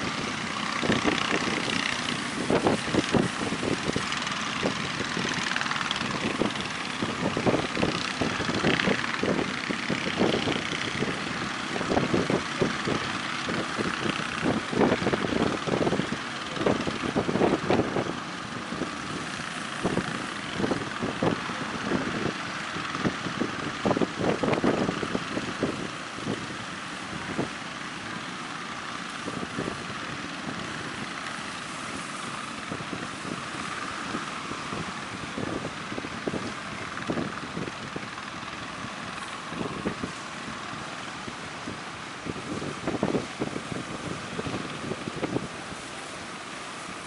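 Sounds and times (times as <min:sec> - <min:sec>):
breaking surf: 0:00.0 - 0:47.0
wind buffeting microphone: 0:00.0 - 0:47.0.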